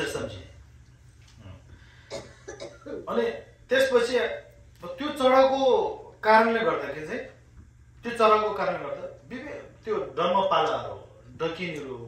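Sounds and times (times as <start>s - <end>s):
man coughing: 2.1s - 3.0s.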